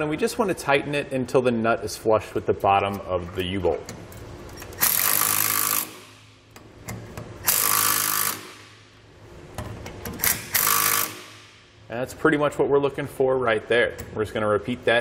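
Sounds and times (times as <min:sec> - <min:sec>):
impact driver hammering nuts: 0:07.4 - 0:08.7, 0:10.1 - 0:11.5.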